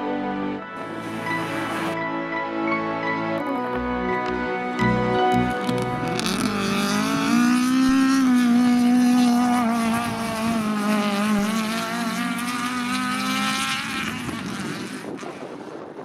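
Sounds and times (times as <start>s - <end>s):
race car engines at high revs: 5.6s - 15.8s.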